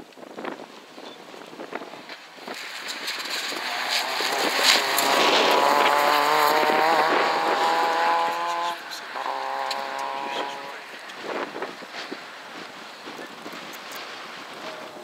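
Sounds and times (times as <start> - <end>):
rally car engine at high revs: 2.4 - 12.2.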